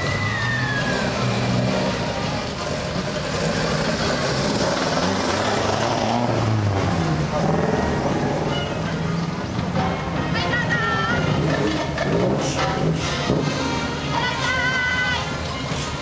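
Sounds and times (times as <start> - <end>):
car engine revving: 0.0 - 9.4.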